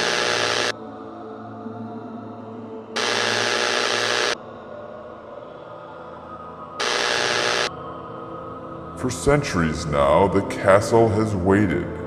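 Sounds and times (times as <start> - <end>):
loud static-like hiss bursts: 0.0 - 0.7, 3.0 - 4.4, 6.8 - 7.7
eerie ambient music: 0.0 - 12.0.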